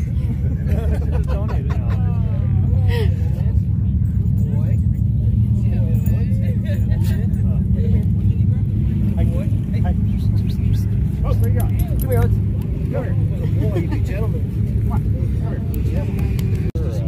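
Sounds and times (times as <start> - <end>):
vehicle engine idling: 0.0 - 17.0.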